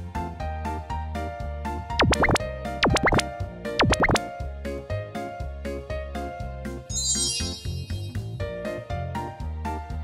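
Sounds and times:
cartoon plop sound effect: 2.0s - 4.2s
children's music with steady beat: 3.8s - 4.2s.

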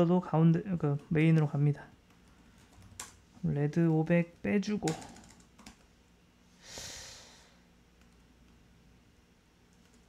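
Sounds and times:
soft breath-like hiss: 6.5s - 7.7s.

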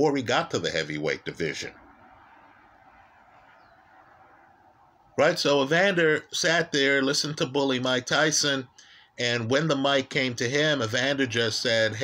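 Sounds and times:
faint high chirp: 3.4s - 4.9s.

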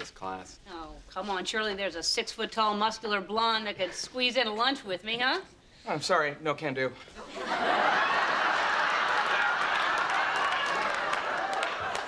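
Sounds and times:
studio audience laughing: 7.2s - 12.0s.

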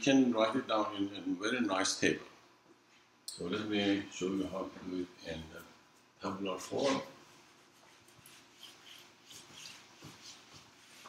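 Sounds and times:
whiteboard eraser swishing: 8.0s - 11.0s.

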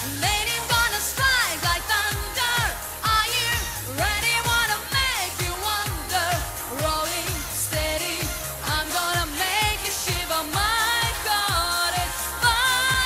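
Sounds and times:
backing music with drum beat: 0.0s - 13.0s
woman singing pop song: 0.0s - 13.0s.

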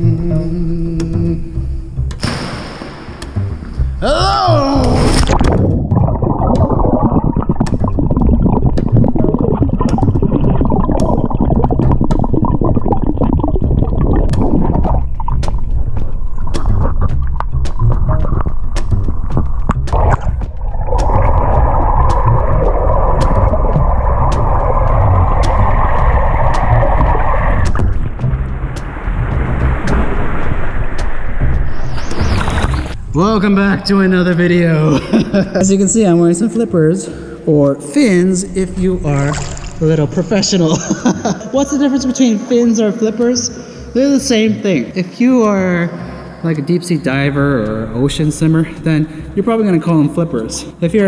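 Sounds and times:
muffled underwater rush of water: 4.9s - 34.7s, 38.3s - 41.6s
bubbles underwater: 5.2s - 33.0s, 38.4s - 40.7s.

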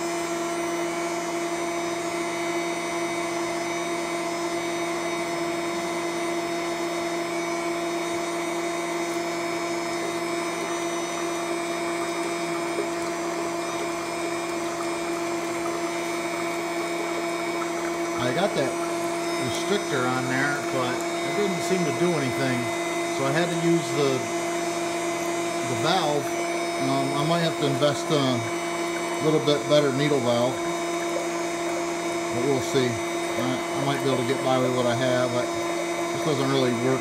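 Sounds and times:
electric pump humming: 0.0s - 37.0s.

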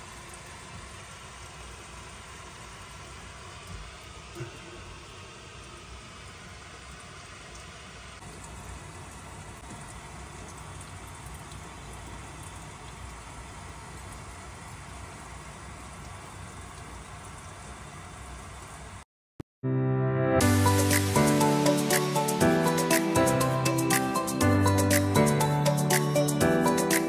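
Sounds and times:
water dripping ticks: 0.0s - 2.0s, 6.8s - 17.8s.

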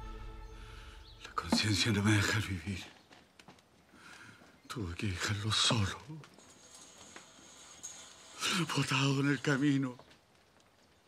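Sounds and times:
person speaking: 1.2s - 2.9s.

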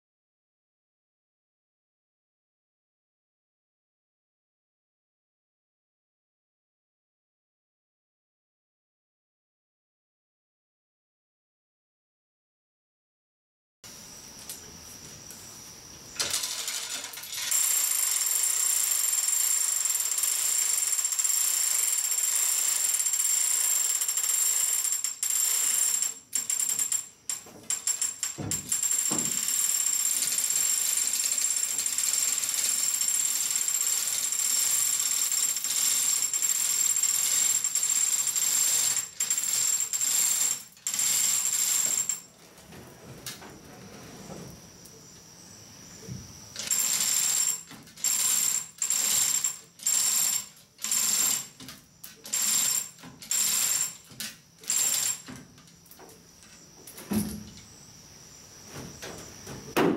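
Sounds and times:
hoist chain rattling and jingling: 16.2s - 17.8s, 24.9s - 42.3s, 46.6s - 55.7s.

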